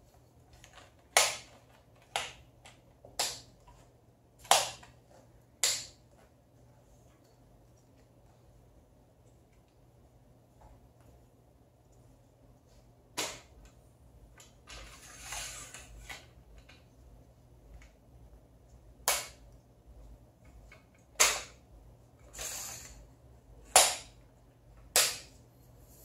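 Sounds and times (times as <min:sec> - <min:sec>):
tripod legs sliding scrapes: 0:14.7 - 0:16.2.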